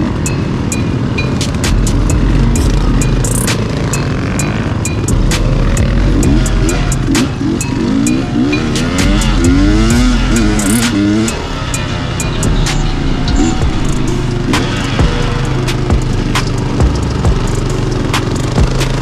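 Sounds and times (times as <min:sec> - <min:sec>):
dirt bike engines revving: 0:00.0 - 0:19.0
sharp clicks: 0:00.7 - 0:04.1, 0:08.8 - 0:12.8.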